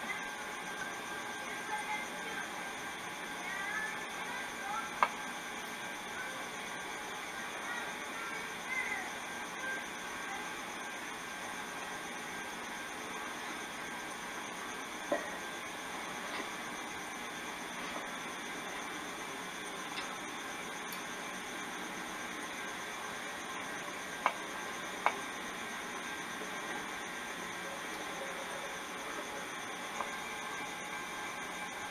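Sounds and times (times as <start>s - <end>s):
camcorder tape hiss: 0.0s - 31.9s.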